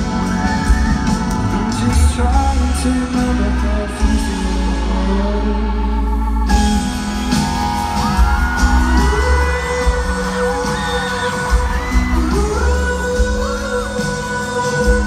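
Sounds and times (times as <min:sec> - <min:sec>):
live pop-rock band playing: 0:00.0 - 0:15.0.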